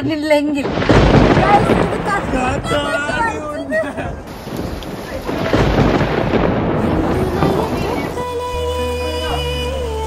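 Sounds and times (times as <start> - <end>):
heavy rain falling: 0.5 - 10.0
deep rumble: 0.7 - 9.0.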